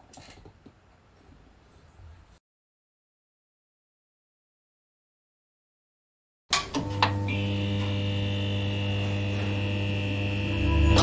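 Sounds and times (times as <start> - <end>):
neon sign electric hum: 6.5 - 11.0.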